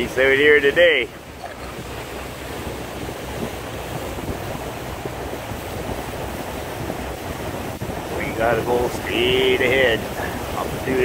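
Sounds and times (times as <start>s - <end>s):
wind and water rushing: 0.0s - 11.0s
wind buffeting microphone: 0.0s - 11.0s.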